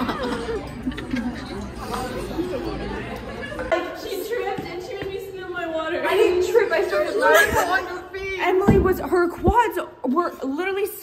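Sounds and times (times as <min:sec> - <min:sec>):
background hubbub: 0:00.0 - 0:11.0
young women chattering: 0:00.0 - 0:11.0.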